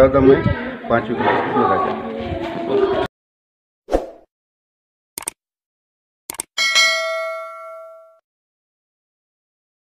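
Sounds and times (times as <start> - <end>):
bell-like metallic ding: 6.6 - 8.2.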